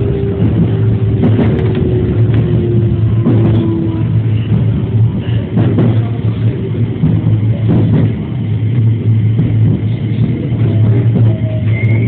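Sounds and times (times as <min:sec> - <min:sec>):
electric train running: 0:00.0 - 0:12.0
train motor hum: 0:00.0 - 0:12.0.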